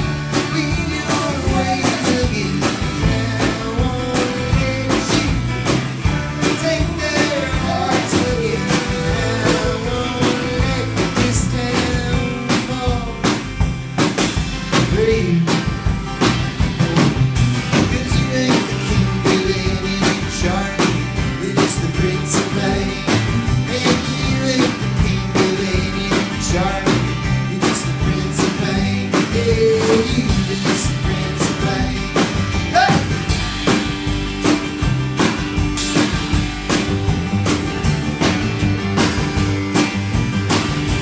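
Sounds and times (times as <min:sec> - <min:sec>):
person singing: 0:00.0 - 0:13.5, 0:14.8 - 0:15.7, 0:16.7 - 0:33.1
steady drum beat: 0:00.0 - 0:41.0
strummed acoustic guitar: 0:00.0 - 0:41.0.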